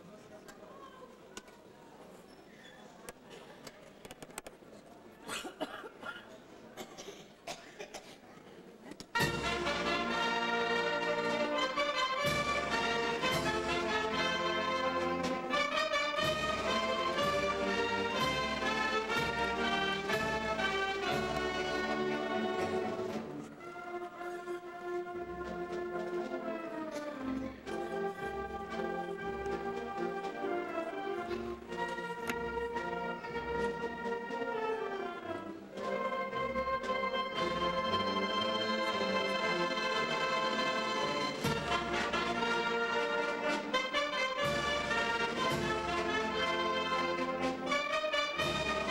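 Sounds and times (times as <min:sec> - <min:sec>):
wind band playing: 0:09.1 - 0:48.9.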